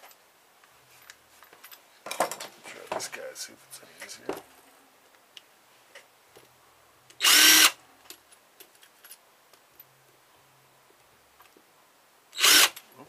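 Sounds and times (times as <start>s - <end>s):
cordless drill whining: 7.2s - 7.8s, 12.4s - 12.8s.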